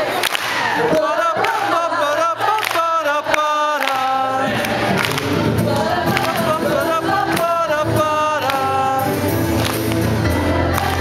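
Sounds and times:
man singing with vibrato: 0:00.8 - 0:11.0
acoustic guitar: 0:00.9 - 0:11.0
keyboard piano: 0:04.5 - 0:11.0.

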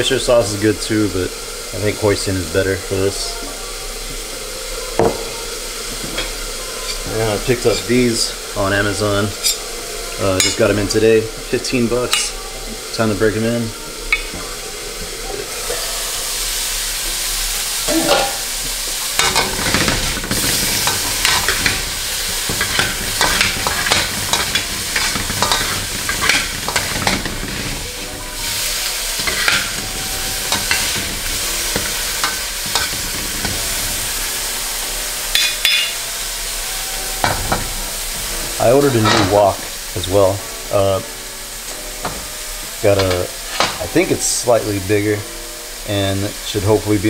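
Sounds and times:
chicken sizzling in a wok: 0:00.0 - 0:47.0
utensils scraping and clinking on pan: 0:06.0 - 0:10.9, 0:17.9 - 0:40.2, 0:41.7 - 0:45.1.

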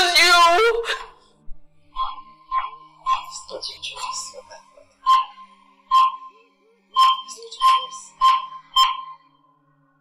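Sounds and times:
short sharp tones: 0:07.0 - 0:09.4.

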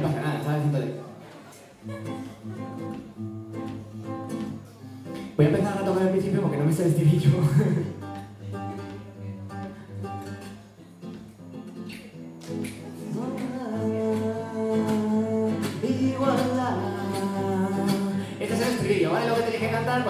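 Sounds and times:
acoustic guitar: 0:00.0 - 0:20.0
man singing: 0:12.8 - 0:20.0.

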